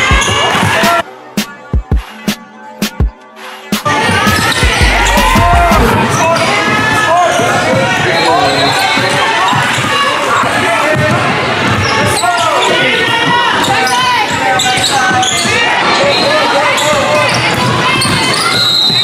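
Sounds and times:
song with sung vocal over beat: 0:00.0 - 0:06.0.

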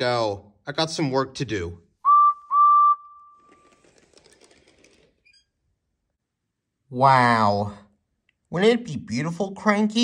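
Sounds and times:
steam engine whistle: 0:02.0 - 0:03.5.

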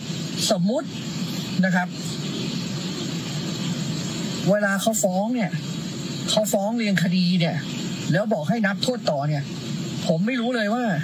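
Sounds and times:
low cabin hum: 0:00.0 - 0:11.0.

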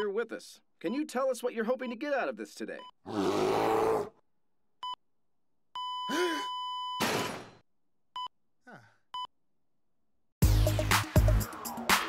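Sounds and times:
person groaning: 0:06.1 - 0:06.5, 0:08.6 - 0:09.0.

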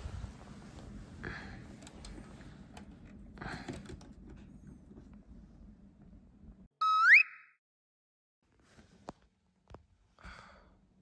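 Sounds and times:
rising electronic beep effect: 0:06.8 - 0:07.6.

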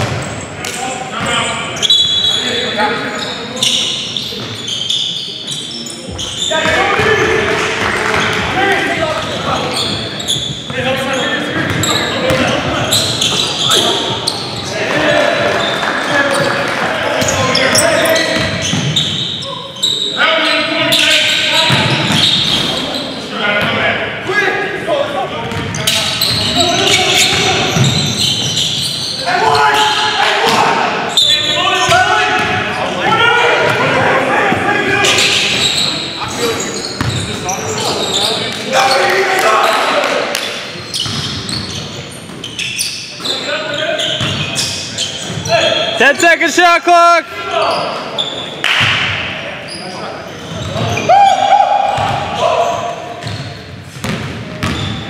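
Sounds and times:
people's voices echoing: 0:00.0 - 0:42.1, 0:43.1 - 0:55.0.

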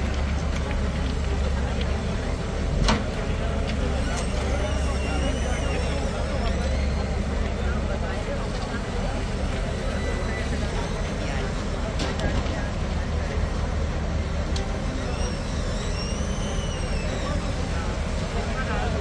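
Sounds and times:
crowd chatter: 0:00.0 - 0:19.0
diesel engines rumbling: 0:00.0 - 0:19.0.

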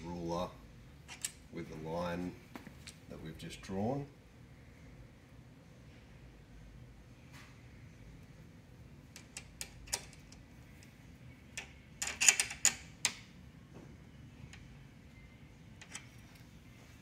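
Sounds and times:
small metal clicks and rattles: 0:09.1 - 0:10.9, 0:11.6 - 0:13.2, 0:15.8 - 0:16.4.

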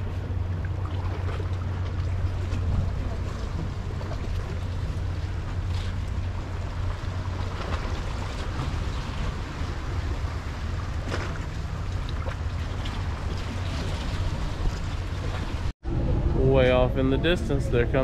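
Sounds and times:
boat engine humming: 0:00.0 - 0:18.0.

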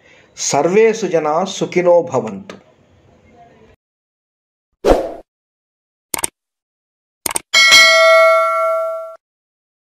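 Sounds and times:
notification bell ding: 0:07.6 - 0:09.2.

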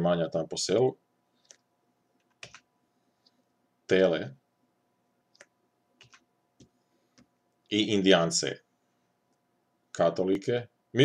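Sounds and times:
faint electrical hum: 0:00.0 - 0:11.0
computer mouse clicks: 0:01.4 - 0:03.4, 0:05.3 - 0:07.3.

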